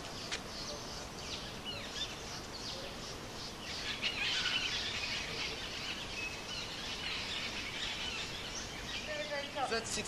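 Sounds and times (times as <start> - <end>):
birds chirping: 0.0 - 10.0
steady outdoor hiss: 0.0 - 10.0.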